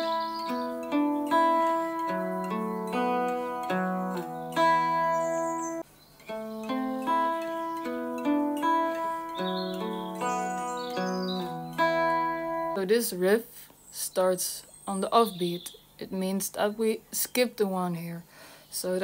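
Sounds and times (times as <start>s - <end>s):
guitar picking a riff: 0.0s - 12.8s.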